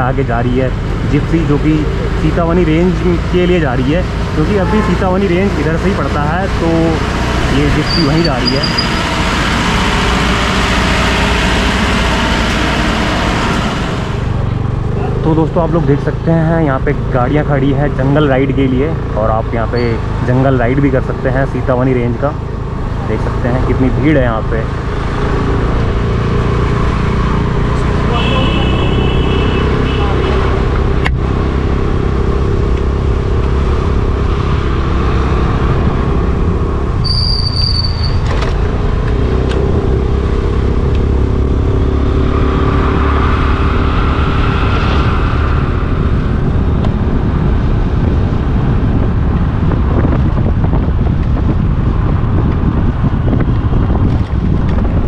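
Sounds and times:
wind and road noise: 0.0s - 55.0s.

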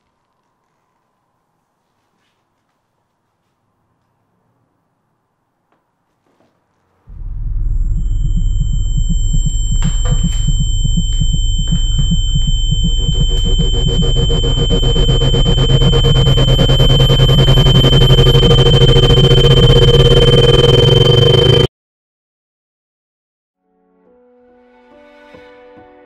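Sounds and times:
high-pitched sine tones: 7.1s - 21.7s
throbbing low rumble: 7.1s - 21.7s.

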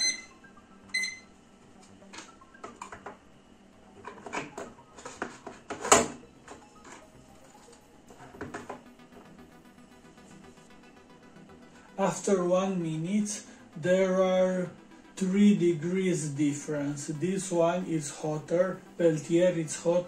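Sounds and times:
digital timer beeping: 0.0s - 1.3s.

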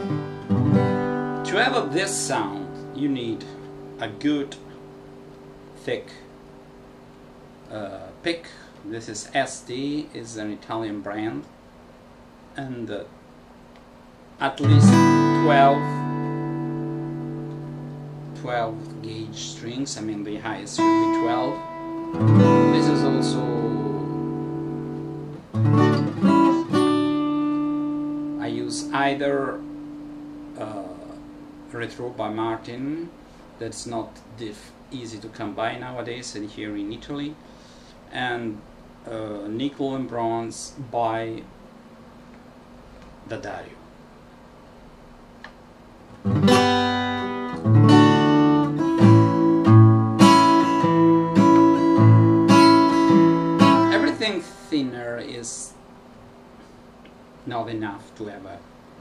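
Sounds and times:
acoustic guitar strummed: 0.0s - 7.5s, 14.4s - 33.4s, 46.2s - 56.4s.

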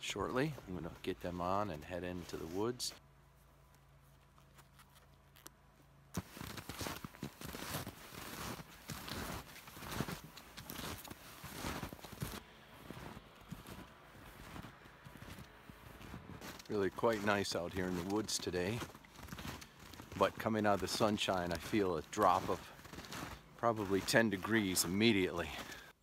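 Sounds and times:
snowshoes crunching through snow: 0.3s - 5.0s, 6.1s - 26.0s.

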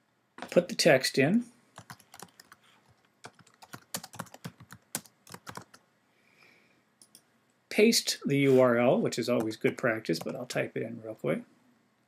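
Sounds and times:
computer keyboard typing: 1.8s - 5.8s, 7.0s - 7.2s, 9.4s - 10.6s.

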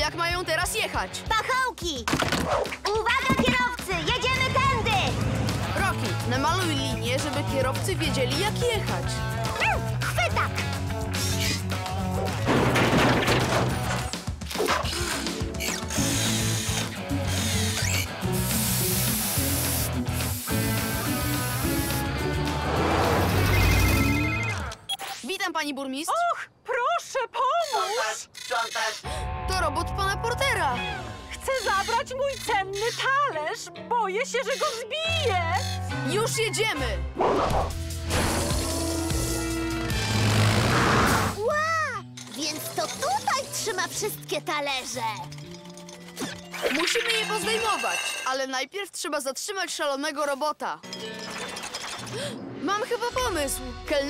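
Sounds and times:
cartoon music with bass line: 2.5s - 12.8s, 13.5s - 24.7s
paint sprayer hissing: 16.0s - 22.2s
cartoon vehicles swooshing: 22.3s - 24.5s
electronic beeps: 23.4s - 25.2s.

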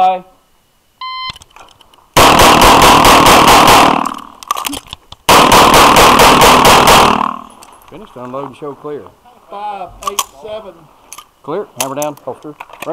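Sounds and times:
pistol shots: 2.2s - 4.4s, 5.3s - 7.5s.

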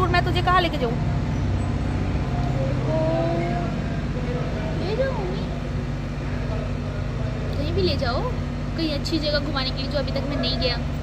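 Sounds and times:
faint distant voices: 0.0s - 11.0s
low mechanical hum: 0.0s - 11.0s.

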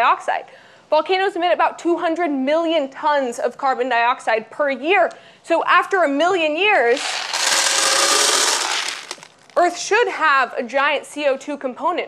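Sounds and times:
beads clattering into plastic container: 6.9s - 9.7s.

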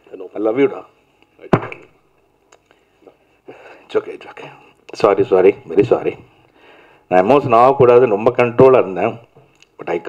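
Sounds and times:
thump on microphone: 1.5s - 1.9s.

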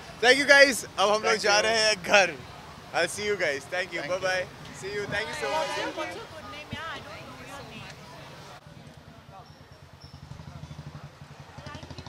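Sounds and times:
faint voices: 0.2s - 12.0s.

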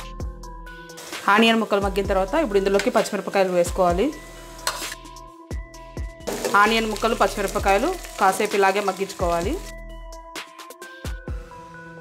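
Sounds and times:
onions sizzling in oil: 0.9s - 5.1s, 6.2s - 9.7s.

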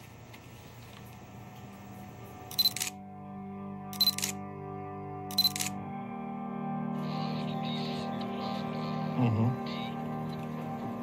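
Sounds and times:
soft sustained music: 0.4s - 11.0s
camera shutter clicks: 2.5s - 3.0s, 4.0s - 4.4s, 5.3s - 5.8s.

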